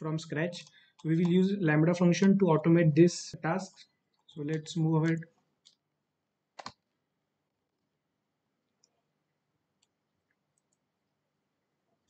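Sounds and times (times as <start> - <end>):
computer mouse click: 6.6 - 6.9.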